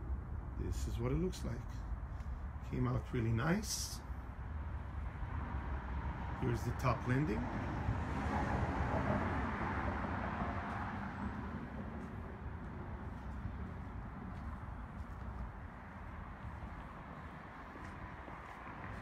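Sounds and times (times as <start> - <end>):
low rumble with hiss: 0.0 - 7.5.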